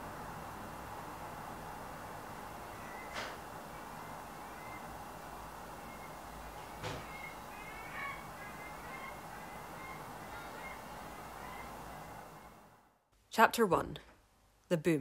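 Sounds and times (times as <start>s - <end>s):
room ambience hiss: 0.0s - 15.0s
faint bird chirps: 4.0s - 5.0s, 5.8s - 12.6s.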